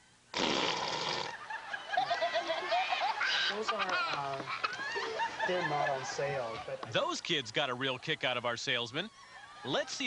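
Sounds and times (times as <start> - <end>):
fart sound effect: 0.3 - 1.3
people laughing: 1.3 - 10.0.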